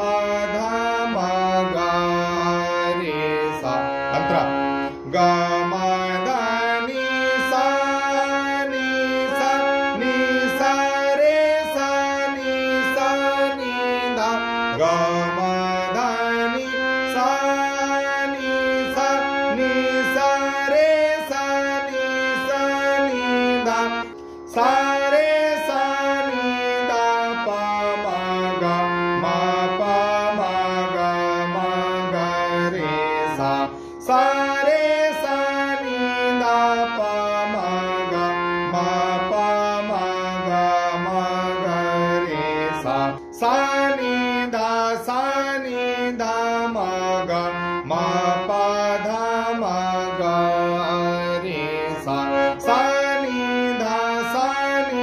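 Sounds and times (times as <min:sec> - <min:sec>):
harmonium drone notes: 0:00.0 - 0:55.0
harmonium melody: 0:00.0 - 0:55.0.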